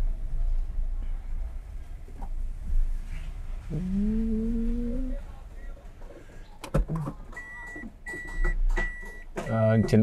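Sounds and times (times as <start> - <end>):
car warning beeper: 7.3 - 10.0.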